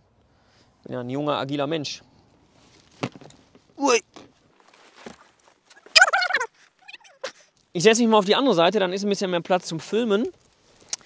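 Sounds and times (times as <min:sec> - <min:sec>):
loud wavering vocal exclamation: 0:05.8 - 0:07.2.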